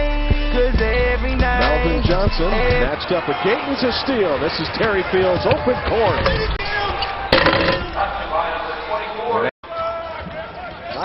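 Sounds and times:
arena crowd noise: 1.7 - 11.0
basketball slamming through rim: 7.3 - 8.0.

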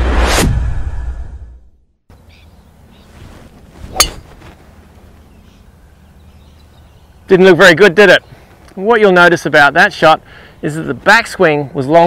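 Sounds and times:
whoosh: 0.0 - 1.7
outdoor background: 0.0 - 12.0
golf club striking ball: 3.9 - 4.3.

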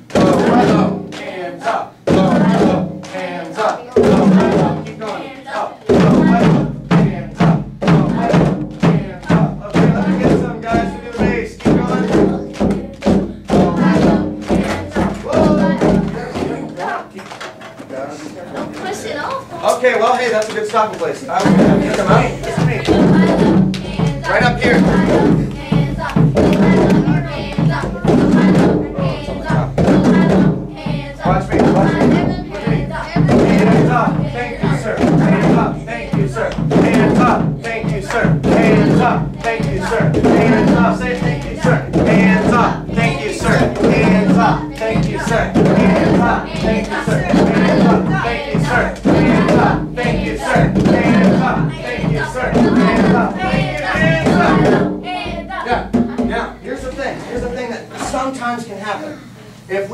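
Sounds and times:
group hand drumming: 0.0 - 17.8, 18.5 - 58.3
voices: 0.0 - 59.9.

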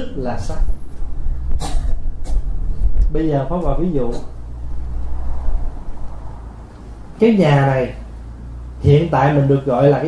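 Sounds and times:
low steady rumble: 0.0 - 10.0.

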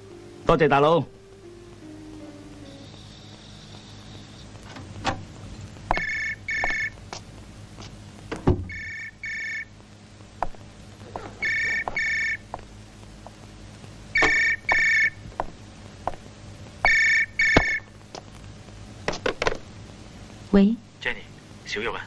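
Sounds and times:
landline telephone ringing: 5.9 - 6.9, 8.7 - 9.7, 11.4 - 12.4, 14.2 - 15.2, 16.9 - 17.8.

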